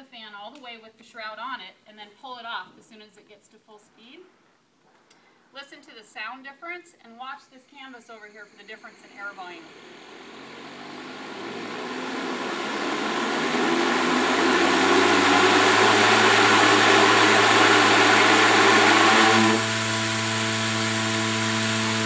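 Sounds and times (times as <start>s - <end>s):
fan humming: 8.0s - 22.0s
electric fan rushing noise: 8.7s - 22.0s.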